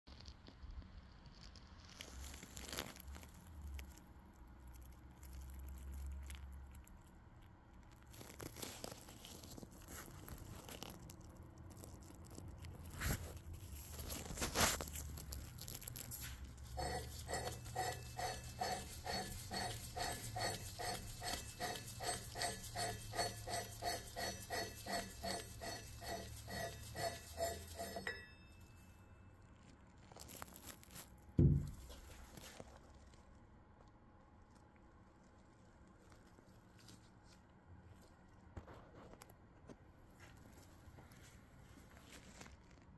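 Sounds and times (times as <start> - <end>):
metal threads grinding and squeaking: 13.8 - 28.8.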